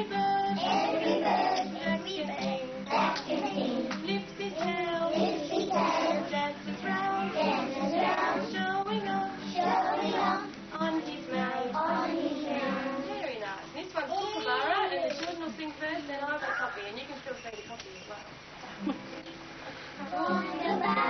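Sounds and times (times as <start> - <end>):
children singing: 0.0 - 13.3, 20.0 - 21.0
strummed acoustic guitar: 0.0 - 13.7, 18.7 - 21.0.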